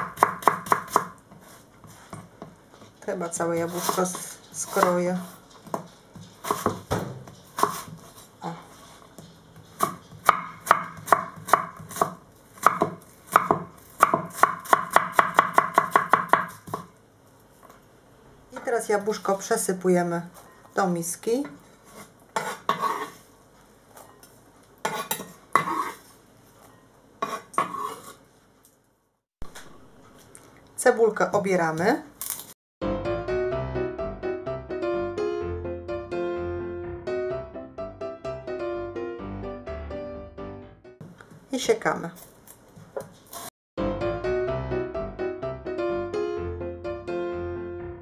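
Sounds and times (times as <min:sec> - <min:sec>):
knife chopping on cutting board: 0:00.0 - 0:01.2, 0:03.7 - 0:08.2, 0:09.2 - 0:16.9, 0:21.9 - 0:23.2, 0:27.2 - 0:28.1
knife scraping on wooden board: 0:03.6 - 0:10.4, 0:21.8 - 0:23.3, 0:24.8 - 0:26.2, 0:27.2 - 0:28.2
piano music: 0:32.8 - 0:41.0, 0:43.8 - 0:48.0.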